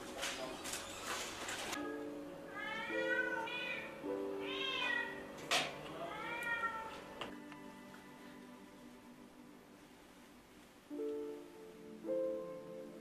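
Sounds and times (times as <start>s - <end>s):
soft background music: 0.0s - 13.0s
cat meowing: 2.5s - 5.3s, 5.9s - 7.2s.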